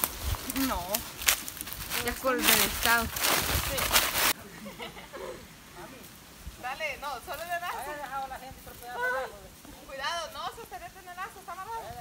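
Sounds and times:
loud noisy rustle: 0.0s - 4.4s.

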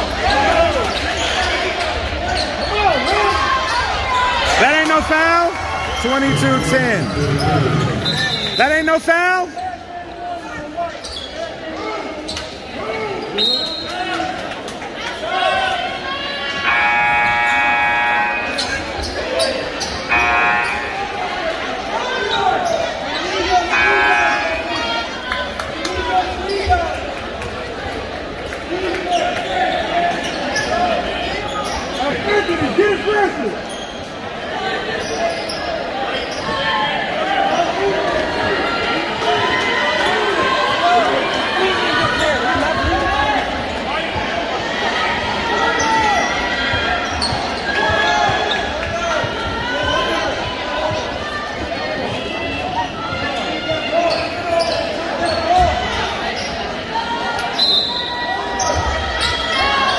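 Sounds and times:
crowd talk and shouts: 0.0s - 59.9s.

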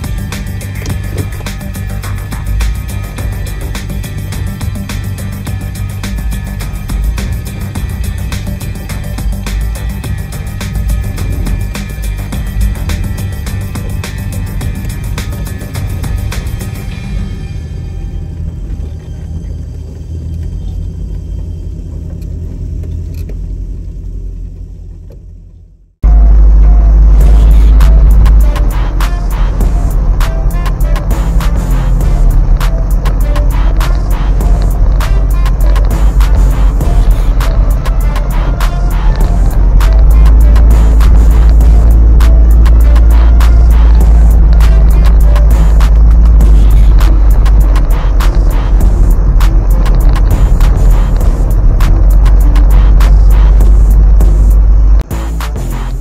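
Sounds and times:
background music: 0.0s - 22.6s, 26.0s - 56.0s
pickup truck cab rumble: 0.0s - 55.3s
constant rattling: 0.0s - 56.0s.

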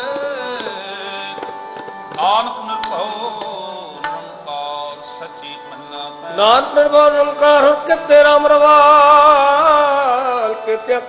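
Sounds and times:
tabla strokes: 0.0s - 4.5s
harmonium melody: 0.0s - 11.0s.

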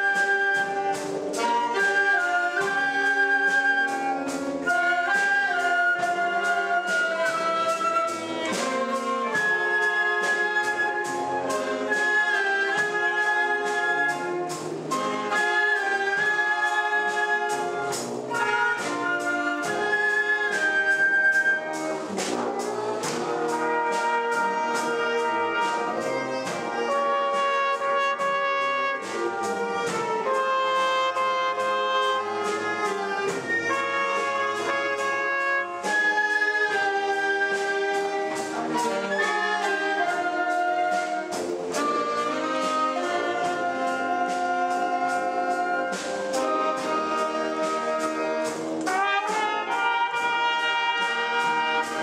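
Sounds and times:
wind band playing: 0.0s - 52.0s.

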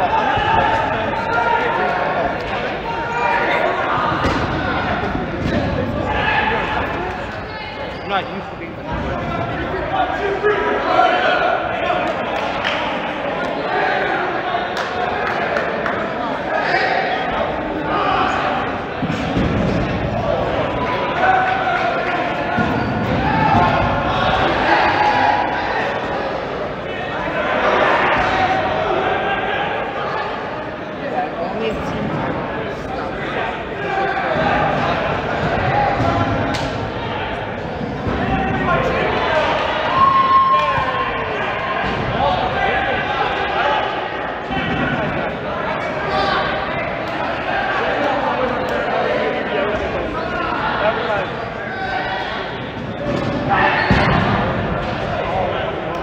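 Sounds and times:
voices talking in echoing gym: 0.0s - 56.0s.

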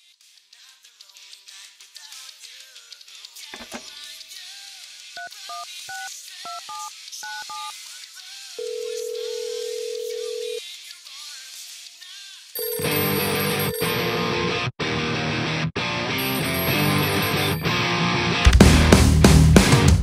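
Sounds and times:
telephone ringback tone: 8.6s - 10.6s, 12.6s - 14.5s, 16.2s - 18.0s
rock music with drums: 17.5s - 20.0s.

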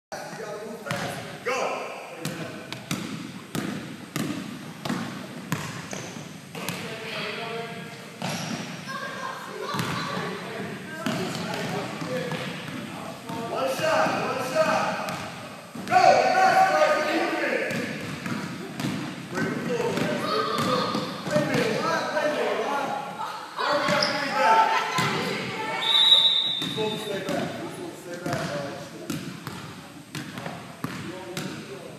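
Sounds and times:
players' voices echoing: 0.2s - 31.9s
basketballs bouncing on hardwood: 2.2s - 6.9s, 9.7s - 10.3s, 15.0s - 16.0s, 17.7s - 21.8s, 29.1s - 31.6s
basketball bouncing on wooden floor: 2.7s - 6.8s, 9.7s - 10.0s, 17.7s - 19.1s.

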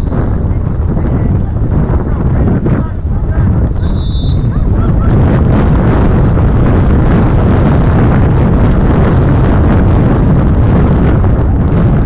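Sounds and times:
wind buffeting microphone: 0.0s - 12.0s
referee's whistle blast: 3.8s - 4.5s.

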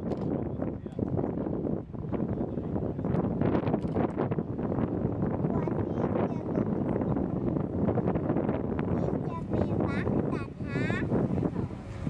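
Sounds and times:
boat engine: 0.0s - 12.0s
wind buffeting microphone: 0.0s - 12.0s.

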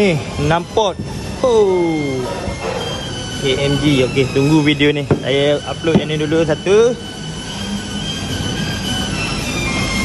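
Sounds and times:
thin high whining tones: 0.0s - 10.0s.

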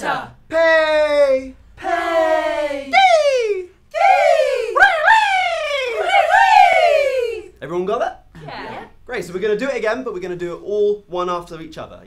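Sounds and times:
group singing vocal warm-up: 0.0s - 0.4s, 1.8s - 3.0s.

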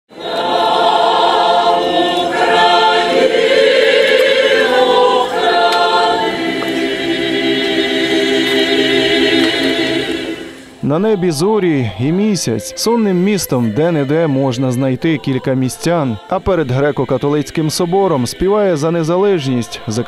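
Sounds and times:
choir singing unaccompanied: 0.1s - 20.0s.

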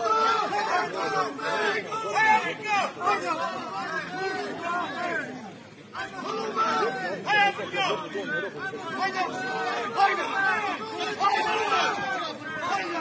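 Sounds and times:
spectators talking and calling out: 0.0s - 13.0s.

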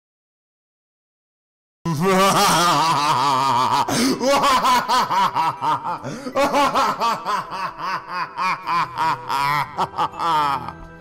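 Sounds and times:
man laughing: 1.9s - 10.9s.

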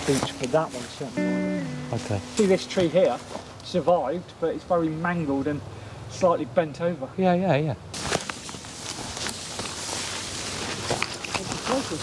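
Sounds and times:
ferns rustling against legs: 0.0s - 4.2s, 7.9s - 12.0s
footsteps in undergrowth: 0.0s - 4.2s, 7.9s - 12.0s.

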